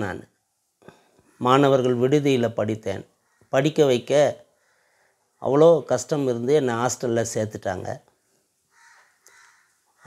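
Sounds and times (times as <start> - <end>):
man speaking: 0.0 - 0.3, 1.4 - 4.5, 5.4 - 8.1
faint short bird calls: 8.7 - 10.0.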